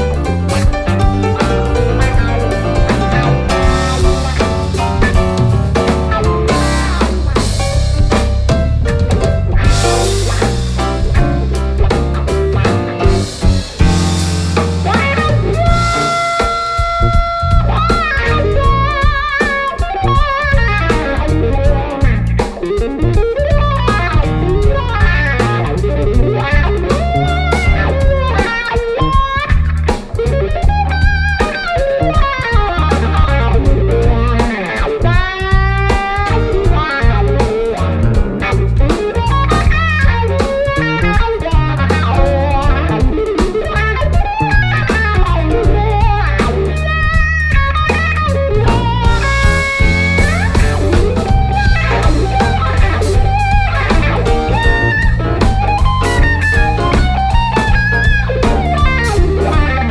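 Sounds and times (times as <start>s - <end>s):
blues-funk band playing: 0.0s - 59.9s
electric guitar bent notes: 0.0s - 59.9s.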